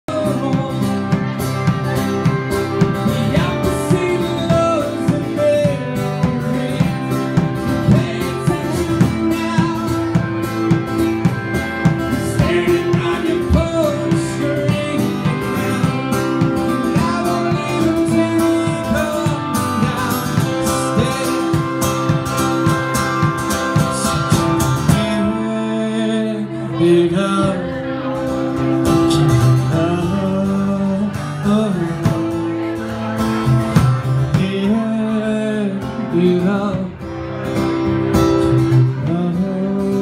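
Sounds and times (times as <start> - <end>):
country band playing: 0.0 - 40.0.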